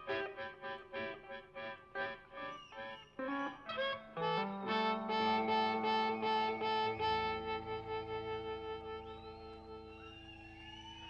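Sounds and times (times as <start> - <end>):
band holding a chord: 4.2 - 10.7.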